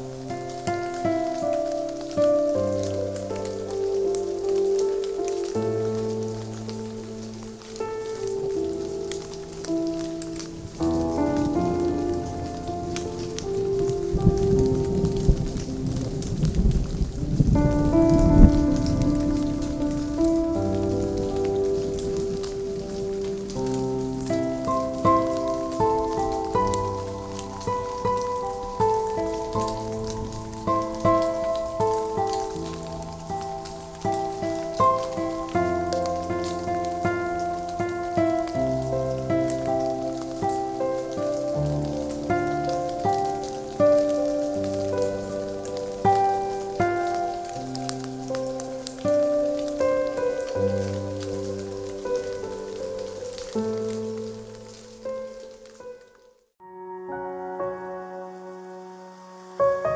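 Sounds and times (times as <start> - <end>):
slow lo-fi chill music: 0.0 - 59.9
steady rain: 0.0 - 59.9.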